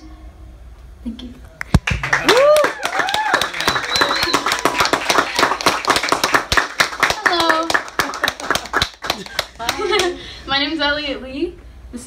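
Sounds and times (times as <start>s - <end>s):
audience applauding: 1.7s - 10.2s
whoops and shouts: 2.2s - 4.8s.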